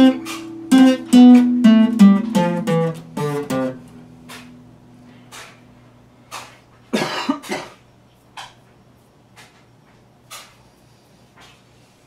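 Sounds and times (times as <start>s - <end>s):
man coughing: 6.9s - 7.8s.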